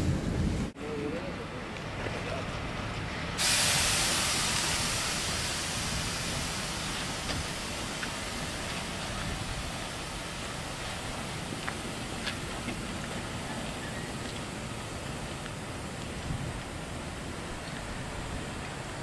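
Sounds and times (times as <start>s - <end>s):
train rolling on track: 0.0s - 19.0s
steam locomotive hissing: 3.3s - 15.8s.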